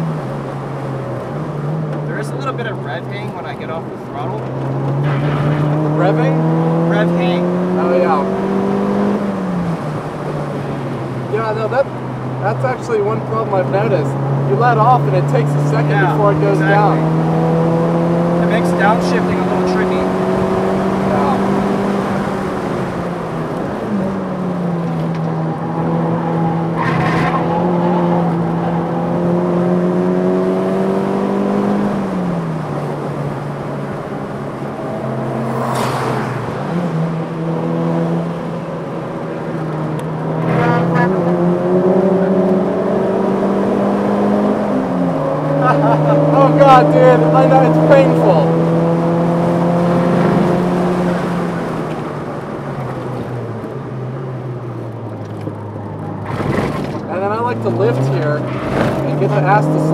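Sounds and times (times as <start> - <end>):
car engine at high revs: 0.0 - 59.9
tyre squeals: 26.0 - 28.9.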